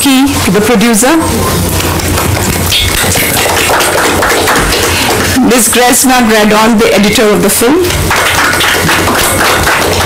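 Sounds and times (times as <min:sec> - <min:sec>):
people clapping: 0:01.7 - 0:10.0.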